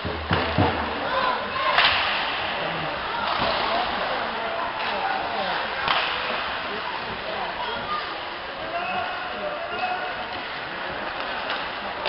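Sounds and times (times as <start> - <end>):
hockey stick hitting puck: 1.7 - 2.2, 5.8 - 6.3.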